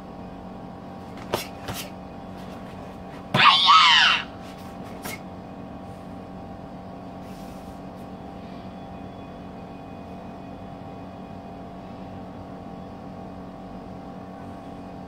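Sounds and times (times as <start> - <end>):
mechanical hum with tones: 0.0 - 15.0.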